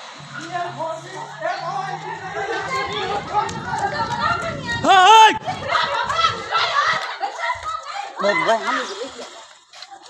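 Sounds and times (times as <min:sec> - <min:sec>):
people shouting and talking: 0:00.1 - 0:10.0.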